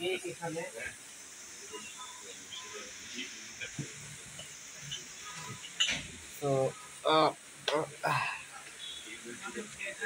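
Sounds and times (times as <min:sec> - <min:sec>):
indistinct talking: 0:00.0 - 0:10.0
steady high hiss: 0:00.0 - 0:10.0.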